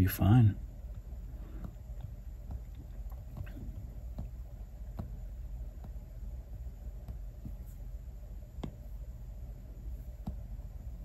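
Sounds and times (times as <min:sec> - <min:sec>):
low steady hum: 0:00.0 - 0:11.0
stylus tapping on glass screen: 0:00.9 - 0:06.1, 0:08.5 - 0:08.9, 0:10.1 - 0:10.5.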